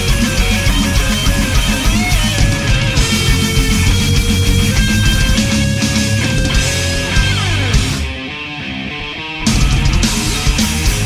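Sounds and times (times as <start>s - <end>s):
distorted guitar notes ringing: 0.0s - 11.0s
heavy metal band: 0.0s - 11.0s.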